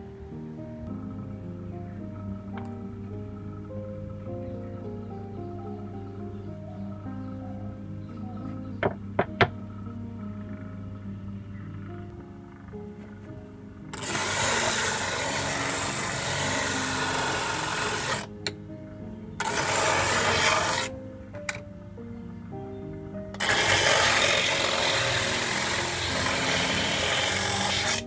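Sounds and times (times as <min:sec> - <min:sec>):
background music: 0:00.0 - 0:28.0
sanding disc grinding hiss: 0:13.9 - 0:18.3, 0:19.4 - 0:20.9, 0:23.4 - 0:28.0.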